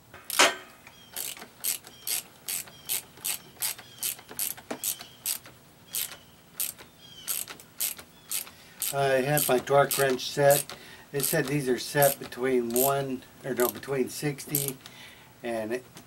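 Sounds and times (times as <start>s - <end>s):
hand ratchet clicking: 1.1s - 13.0s, 13.6s - 14.9s.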